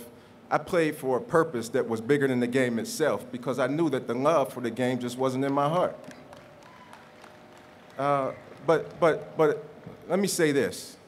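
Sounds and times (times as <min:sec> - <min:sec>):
faint audience applause: 0:05.4 - 0:09.6.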